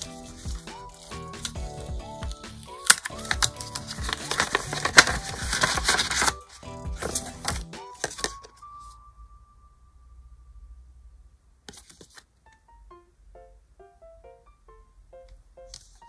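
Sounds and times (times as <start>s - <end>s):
paper rustling: 0.0s - 9.0s, 11.7s - 12.3s, 15.7s - 16.0s
background music: 0.0s - 11.1s, 12.4s - 16.0s.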